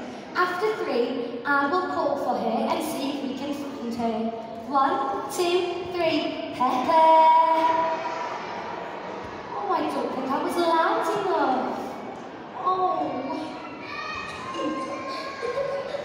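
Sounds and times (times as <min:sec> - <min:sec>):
woman talking over loudspeakers: 0:00.4 - 0:07.9, 0:09.5 - 0:11.9, 0:12.6 - 0:13.5.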